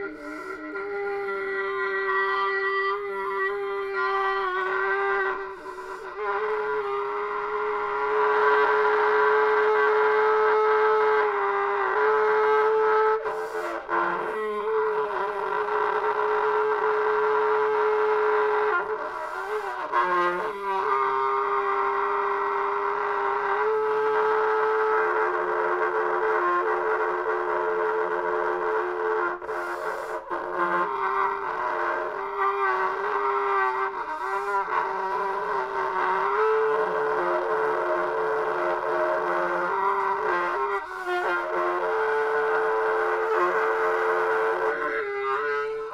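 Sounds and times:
trumpet playing long notes: 0:00.0 - 0:45.9.

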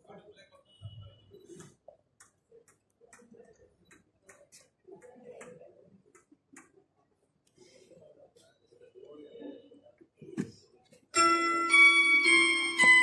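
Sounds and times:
faint irregular clicks: 0:02.2 - 0:06.8.

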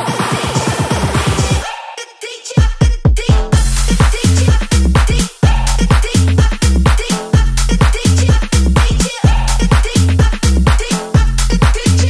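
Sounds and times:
kick drum and heavy bass: 0:00.0 - 0:01.7, 0:02.5 - 0:12.0
bass house music: 0:00.0 - 0:01.9, 0:02.5 - 0:12.0.

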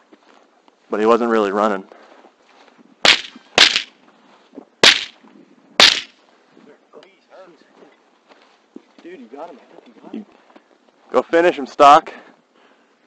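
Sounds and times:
rifle shots: 0:03.1 - 0:03.9, 0:04.8 - 0:05.1, 0:05.8 - 0:06.1.

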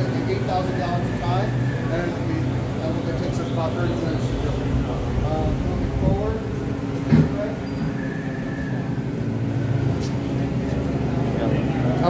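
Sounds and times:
faint high whine: 0:00.0 - 0:10.7
low machine hum: 0:00.0 - 0:12.0.

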